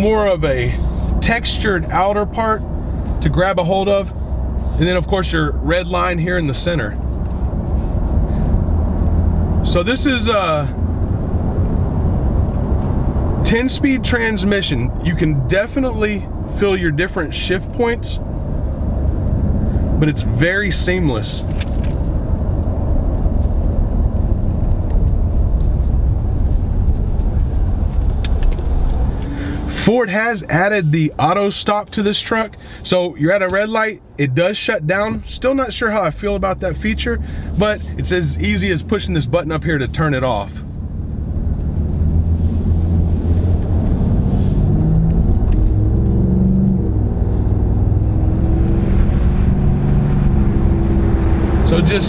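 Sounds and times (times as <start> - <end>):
engine rumble inside car cabin: 0.0 - 52.0
road noise: 0.0 - 52.0.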